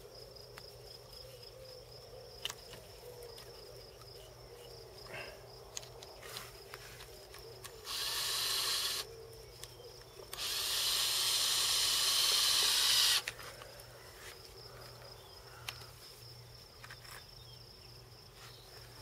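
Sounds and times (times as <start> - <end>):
cordless drill driving screws: 7.8 - 9.1, 10.3 - 13.3.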